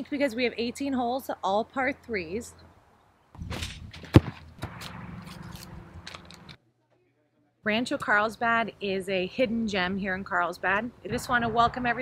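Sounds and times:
soccer ball kicked thud: 3.4 - 5.0.

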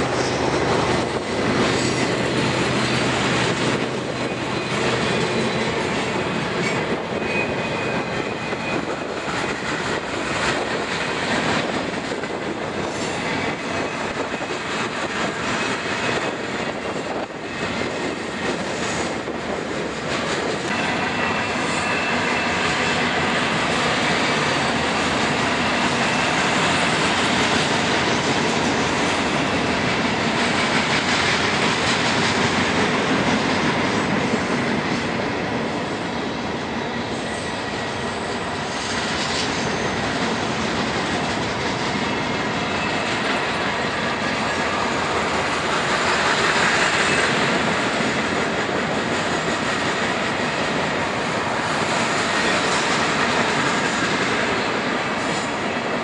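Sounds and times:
train wheels rolling on rail: 0.0 - 56.0.

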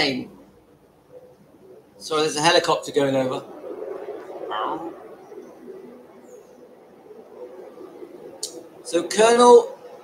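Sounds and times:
helicopter drone: 2.0 - 10.0.

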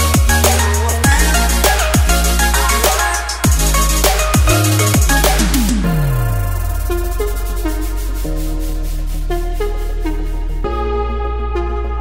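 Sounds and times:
fast high rhythmic patter: 0.0 - 9.7
sliding synth notes: 0.0 - 11.8
deep synth bass note: 3.4 - 11.8.

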